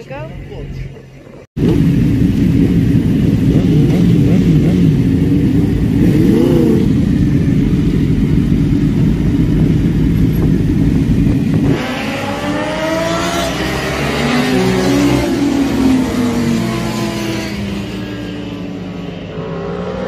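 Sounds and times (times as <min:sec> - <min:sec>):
motorcycle engines idling: 0:00.0 - 0:11.7
motorcycle accelerating: 0:01.5 - 0:20.0.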